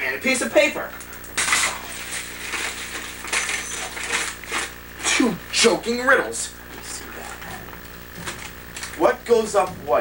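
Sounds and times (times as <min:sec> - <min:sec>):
low electrical hum: 0:00.0 - 0:10.0
paper rustling and crinkling: 0:01.4 - 0:04.9.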